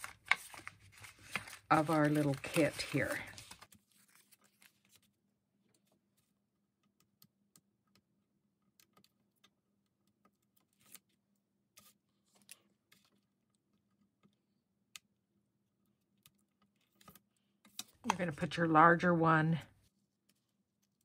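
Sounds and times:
paper rustling: 0:00.0 - 0:05.1.

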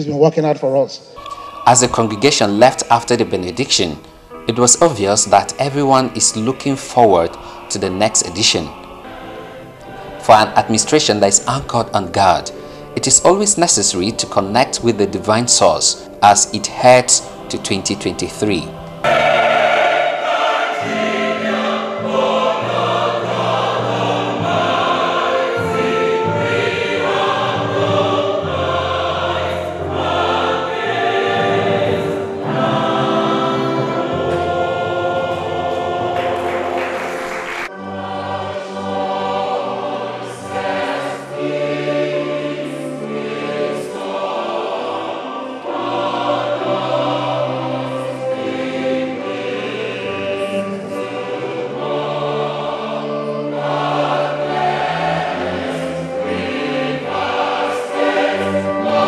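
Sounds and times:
choir singing gospel song: 0:01.0 - 0:59.0.

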